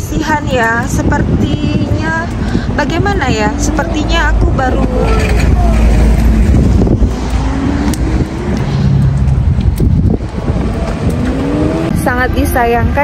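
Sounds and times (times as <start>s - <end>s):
traffic rumble: 0.0s - 13.0s
car engines passing: 1.0s - 13.0s.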